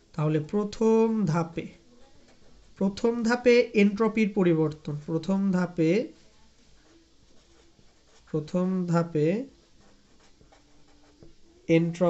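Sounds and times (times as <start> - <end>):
person speaking: 0.0 - 12.0
pen scratching on paper: 1.3 - 12.0.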